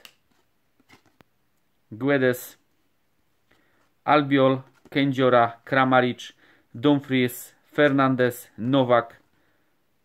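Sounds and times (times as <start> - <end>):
cardboard cards clicking and flicking: 0.0 - 1.3.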